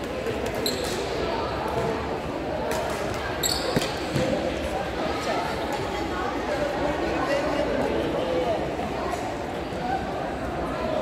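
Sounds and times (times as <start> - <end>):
chatter in echoing hall: 0.0 - 11.0
shoe squeaks on court floor: 0.6 - 1.1, 3.4 - 4.1.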